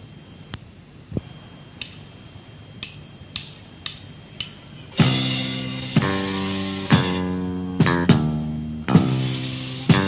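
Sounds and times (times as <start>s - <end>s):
faint high whine: 0.0s - 10.0s
tape hiss: 0.0s - 10.0s.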